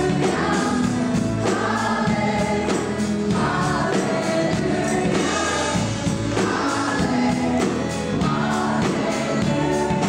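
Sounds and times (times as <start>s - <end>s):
backing singers: 0.0s - 10.0s
drums: 0.0s - 10.0s
electric guitars: 0.0s - 10.0s
woman singing lead vocal: 0.0s - 10.0s.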